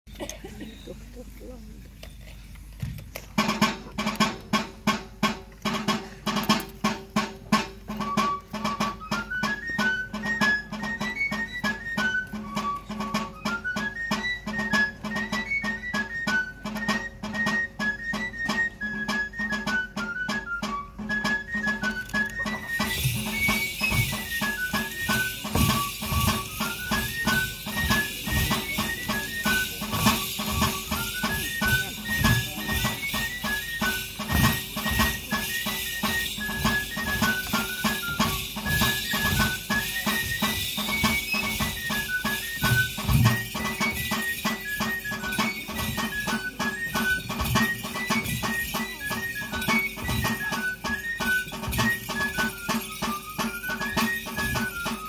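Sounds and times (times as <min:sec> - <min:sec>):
drum beating steady rhythm: 0:00.1 - 0:55.0
pipe melody: 0:06.8 - 0:55.0.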